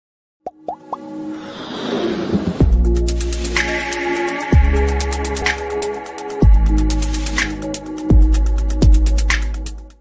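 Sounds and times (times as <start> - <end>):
intro music: 0.6 - 9.9
whoosh: 1.2 - 3.2.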